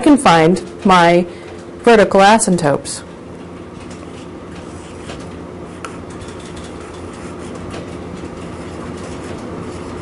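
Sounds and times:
marker squeaking on whiteboard: 4.0s - 10.0s.

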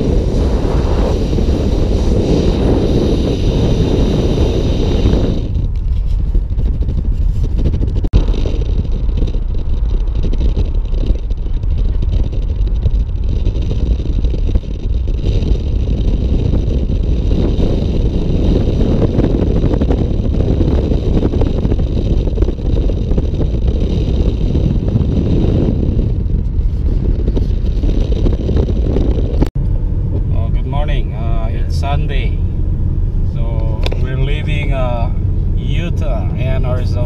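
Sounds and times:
road noise: 0.0s - 37.0s
wind buffeting microphone: 0.0s - 37.0s.

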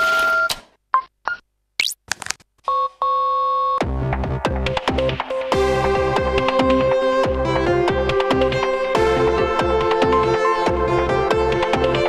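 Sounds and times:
music: 3.8s - 12.0s.

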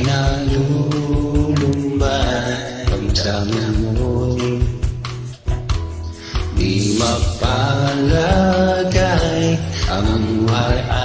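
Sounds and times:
beat and bass line: 0.1s - 11.0s.

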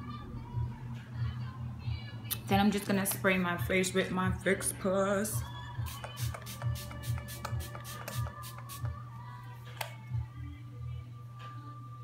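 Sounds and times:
background music with beat: 5.3s - 12.0s
spray bottle hissing: 5.9s - 8.9s.

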